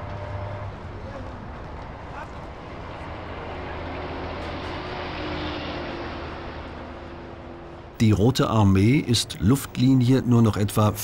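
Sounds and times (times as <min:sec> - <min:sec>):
vehicle engines droning: 0:00.0 - 0:11.0.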